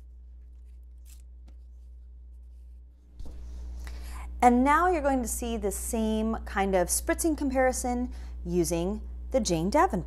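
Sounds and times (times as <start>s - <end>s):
paper rustling: 0.0s - 3.6s
steady low hum: 0.0s - 10.0s.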